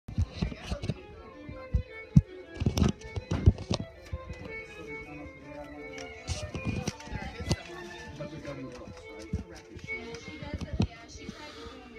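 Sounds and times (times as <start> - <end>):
music with voices: 0.1 - 11.9.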